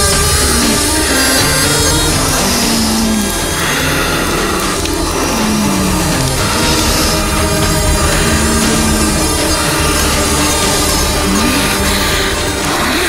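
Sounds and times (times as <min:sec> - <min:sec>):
drama background music: 0:00.0 - 0:13.0.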